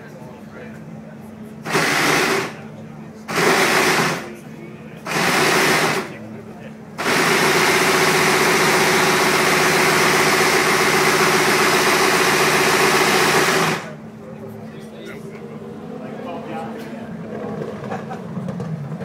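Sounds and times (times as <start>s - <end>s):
racing car engine starting and idling: 0.0s - 19.0s.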